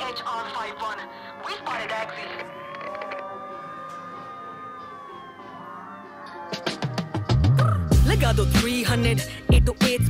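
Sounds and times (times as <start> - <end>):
police siren wail: 0.0 - 9.0.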